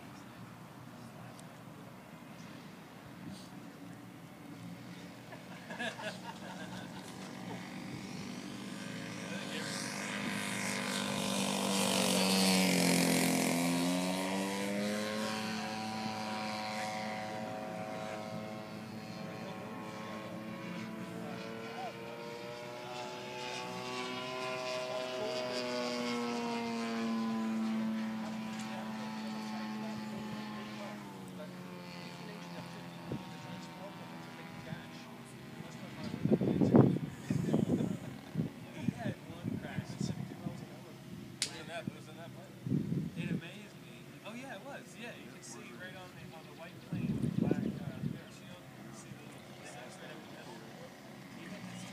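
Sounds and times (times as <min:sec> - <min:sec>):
model aircraft engine: 0:00.0 - 0:51.9.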